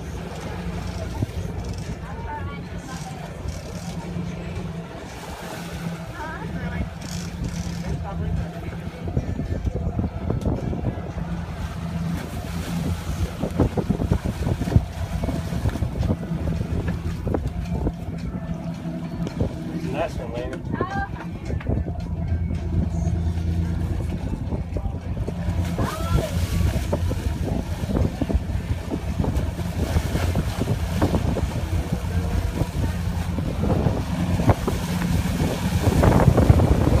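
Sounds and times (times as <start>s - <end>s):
boat engine droning: 0.0s - 37.0s
wind on microphone: 6.7s - 37.0s.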